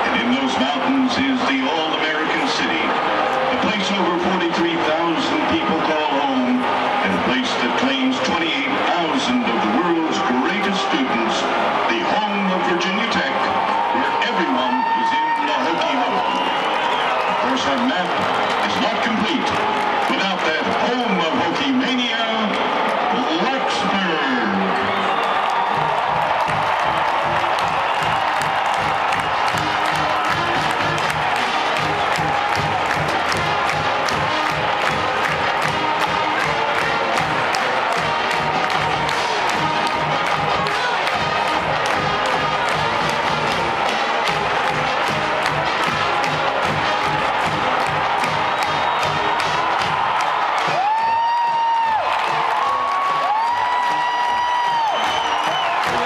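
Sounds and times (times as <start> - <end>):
crowd cheering: 0.0 - 56.0
marching band playing: 23.0 - 51.3.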